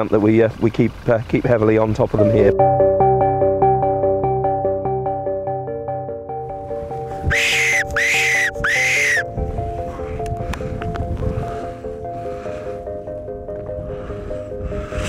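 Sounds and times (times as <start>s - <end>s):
background music: 2.2s - 15.0s
high squealing calls: 7.3s - 9.3s.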